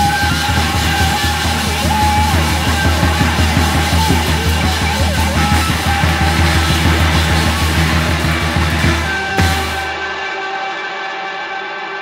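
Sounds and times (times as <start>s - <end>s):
fast pulsing bass line: 0.0s - 10.1s
live rock band playing: 0.0s - 10.6s.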